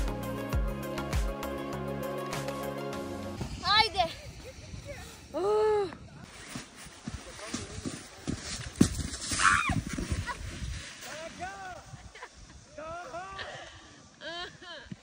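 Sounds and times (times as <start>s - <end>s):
wind on microphone: 3.4s - 8.0s, 8.8s - 13.0s
snowboard scraping over snow: 3.4s - 13.3s
body falling into snow: 6.2s - 12.3s.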